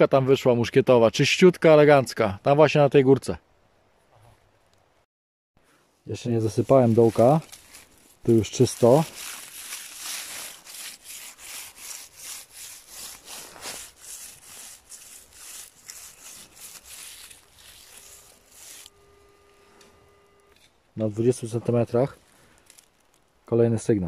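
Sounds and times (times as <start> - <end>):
coil rustling through dry leaves: 5.7 - 19.8, 21.4 - 23.6
metal detector electronic tone: 18.1 - 20.6.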